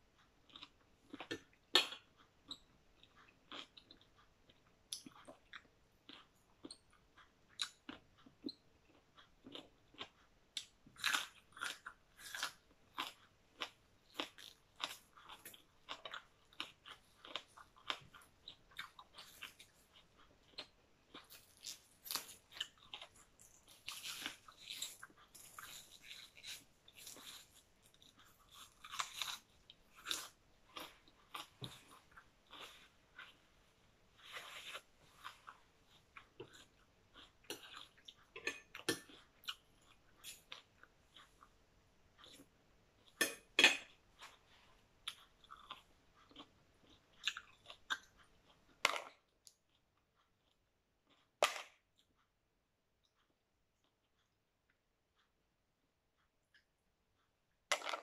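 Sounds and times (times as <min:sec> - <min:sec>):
person chewing crunchy food: 0:00.1 - 0:52.2.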